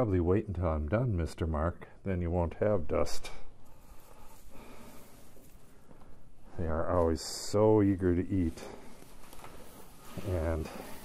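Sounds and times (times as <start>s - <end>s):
dry hay rustling: 3.7s - 6.0s, 6.6s - 11.0s.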